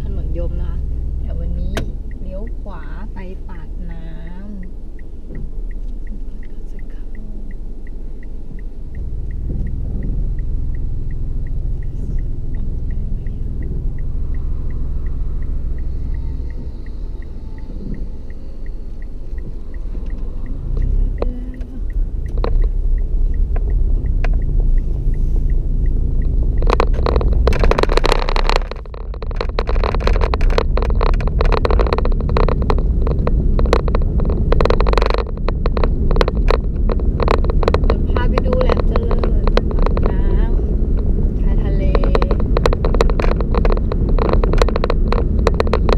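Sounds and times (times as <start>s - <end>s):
car engine and road rumble: 0.0s - 45.9s
turn signal ticking: 0.0s - 45.9s
loud crackling rushing noise: 25.8s - 45.9s.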